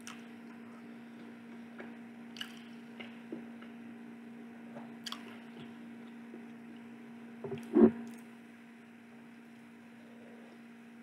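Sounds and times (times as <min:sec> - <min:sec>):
chewing with wet squishing: 0:02.3 - 0:03.1, 0:05.0 - 0:05.4
mouth clicks and smacks: 0:05.0 - 0:05.3.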